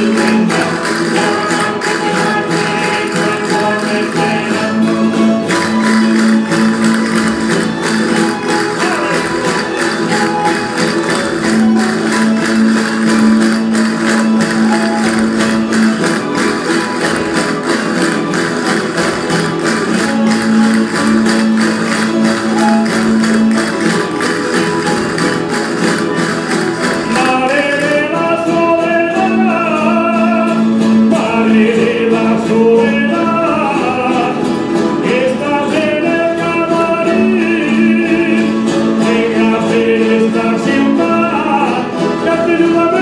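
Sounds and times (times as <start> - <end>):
castanets clicking: 0.0 - 4.8, 5.5 - 28.1
strummed string ensemble music: 0.0 - 43.0.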